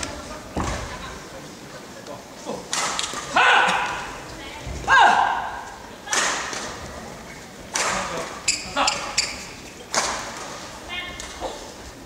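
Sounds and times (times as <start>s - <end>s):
players shouting in a hall: 3.3s - 6.3s.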